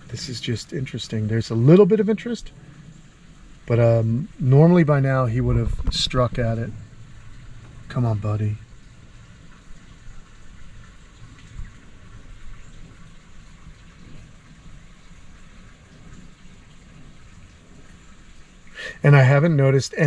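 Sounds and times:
even hiss: 0.0s - 8.8s, 10.5s - 20.0s
low rumble: 2.4s - 13.1s.

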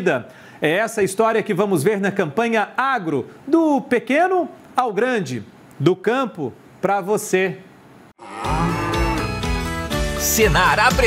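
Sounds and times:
cow mooing: 8.2s - 9.6s.

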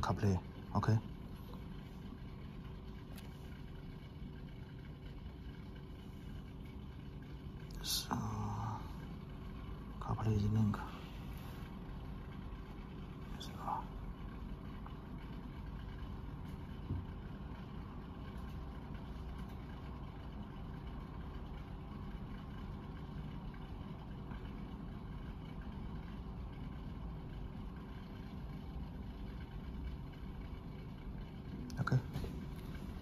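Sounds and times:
faint hum: 0.0s - 33.0s
low background rumble: 0.0s - 33.0s.

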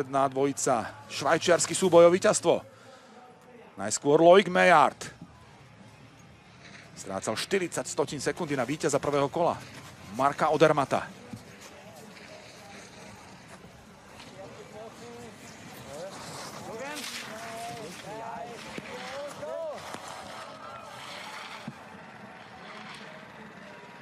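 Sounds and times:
skis carving over hard snow: 8.5s - 23.5s
spectators shouting and cheering: 11.5s - 24.0s.

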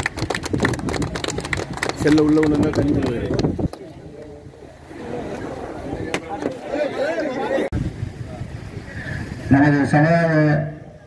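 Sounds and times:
crowd clapping: 0.0s - 4.4s.

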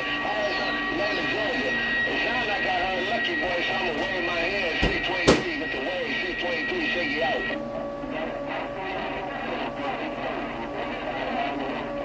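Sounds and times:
steady whistling tones: 0.0s - 7.6s
garbled voices over radio: 0.0s - 12.0s.

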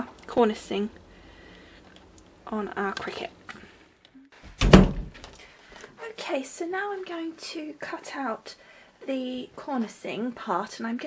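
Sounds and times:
heavy thump: 4.5s - 5.2s.

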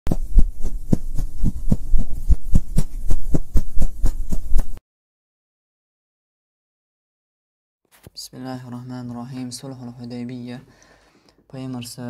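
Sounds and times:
low thumping pulse: 0.1s - 4.8s
steady low hum: 0.1s - 4.8s.

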